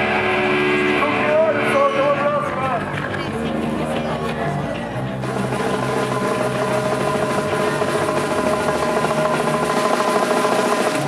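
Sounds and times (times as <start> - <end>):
bass guitar: 0.0 - 9.8
distorted guitars: 0.0 - 11.0
fast drumming: 5.2 - 11.0.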